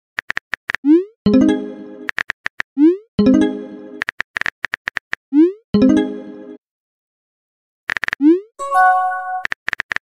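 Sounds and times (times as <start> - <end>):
message chime: 8.6 - 9.4.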